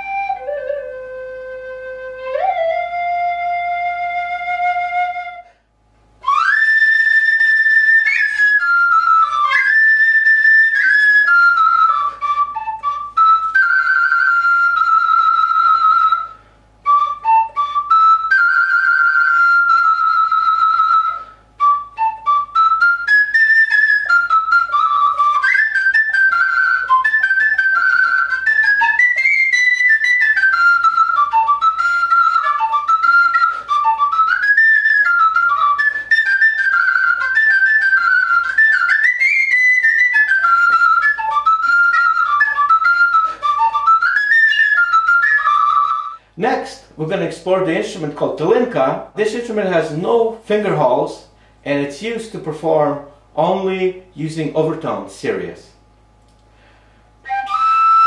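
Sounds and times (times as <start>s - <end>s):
wooden flute melody: 0.0s - 49.2s, 56.0s - 58.0s.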